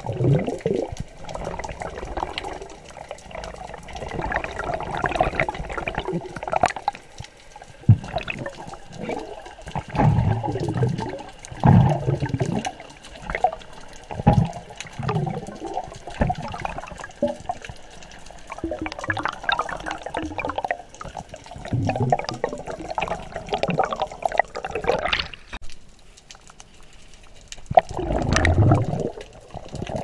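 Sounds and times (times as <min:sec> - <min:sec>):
splash: 0:00.0 - 0:25.6
water sloshing and bubbling: 0:00.0 - 0:30.0.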